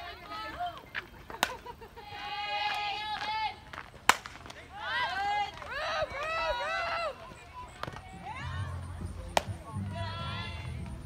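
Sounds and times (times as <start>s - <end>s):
softball bat crack: 0.1s - 1.7s, 2.6s - 6.4s, 7.2s - 10.0s
people yelling: 4.5s - 11.0s
long drawn-out shout: 4.7s - 8.8s.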